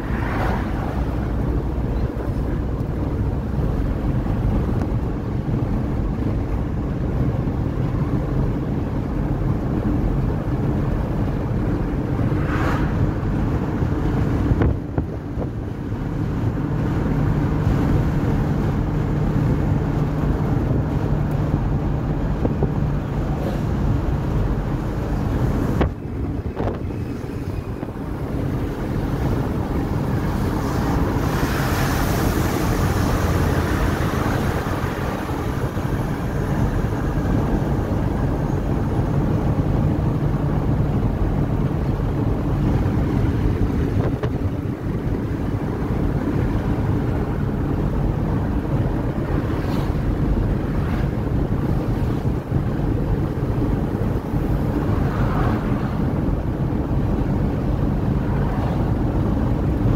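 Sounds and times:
engine and road noise in cabin: 0.0s - 59.9s
wind noise on microphone: 0.0s - 59.9s.

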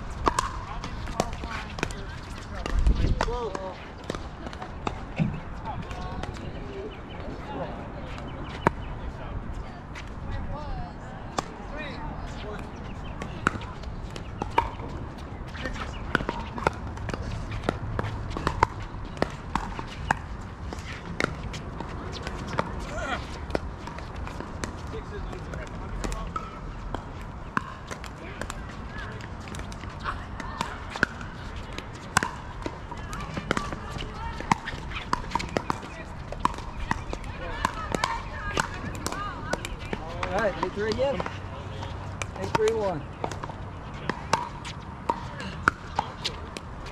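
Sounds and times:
faint distant voices: 0.2s - 46.9s
paddles hitting plastic ball: 25.5s - 46.9s.

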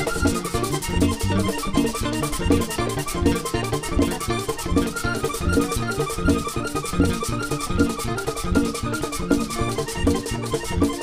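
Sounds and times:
bass: 0.0s - 11.0s
button accordion melody: 0.0s - 11.0s
quick percussion beat: 0.0s - 11.0s.

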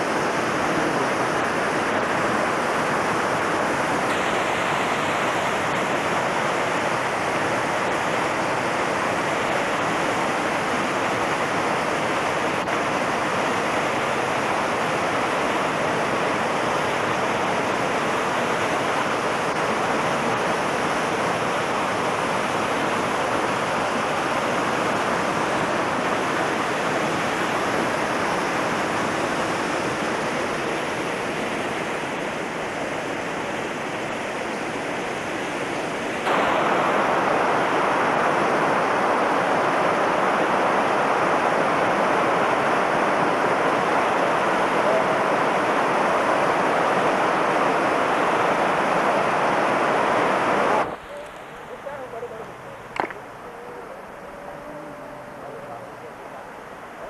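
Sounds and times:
river rushing over rocks: 0.0s - 57.0s.

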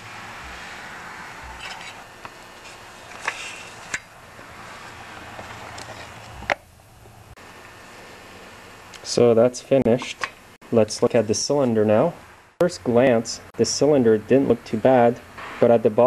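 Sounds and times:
faint hum: 0.0s - 16.0s.

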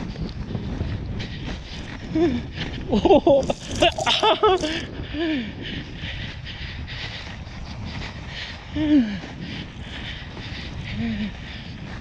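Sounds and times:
sled runners scraping on snow: 0.0s - 5.0s, 5.8s - 12.0s
person exclaiming: 3.2s - 4.8s.

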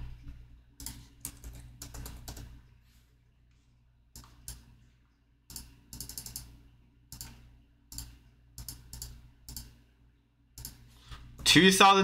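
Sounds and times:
computer keyboard typing: 0.8s - 2.6s, 5.5s - 9.8s, 10.6s - 10.8s.

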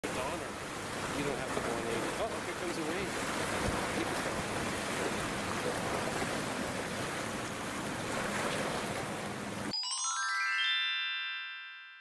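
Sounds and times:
waves breaking against rocks: 0.0s - 9.7s
chiming jingle: 9.7s - 12.0s.

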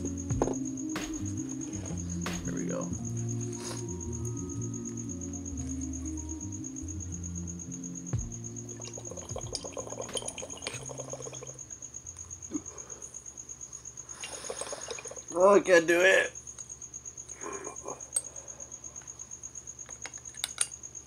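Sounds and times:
quiet background music: 0.0s - 12.5s
water bubbling in glass pipe: 8.7s - 11.7s, 14.2s - 15.3s.

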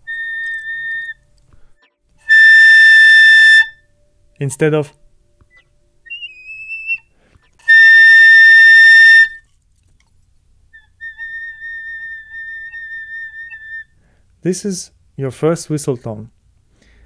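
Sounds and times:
piccolo whistle tones: 0.0s - 1.3s, 2.2s - 3.9s, 5.5s - 9.4s, 10.8s - 14.0s.

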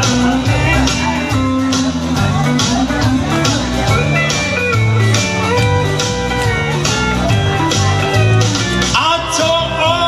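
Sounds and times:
country band music: 0.0s - 10.0s
fiddle melody: 0.4s - 9.2s.

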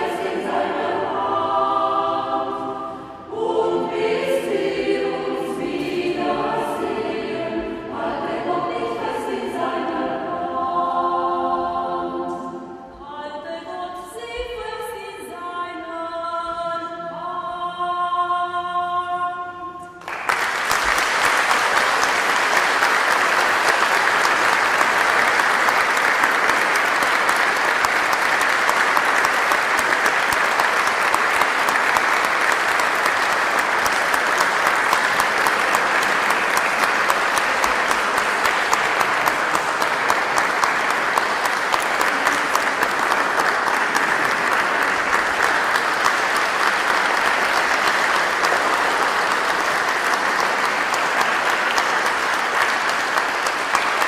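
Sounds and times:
audience applauding: 20.0s - 54.0s.

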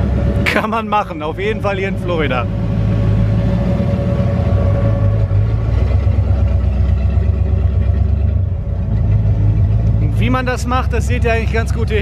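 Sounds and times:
engine idling: 0.0s - 12.0s.

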